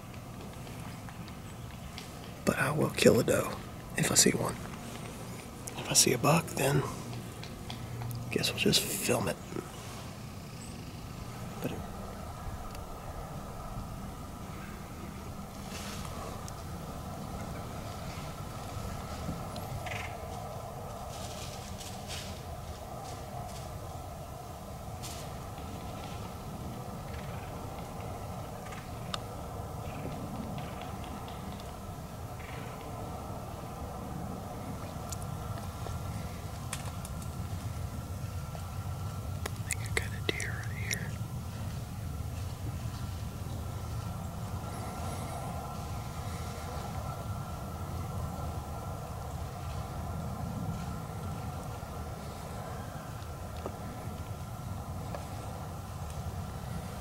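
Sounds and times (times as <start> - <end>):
faint constant hum: 0.0 - 57.0
whispering: 5.8 - 7.0, 39.6 - 41.2.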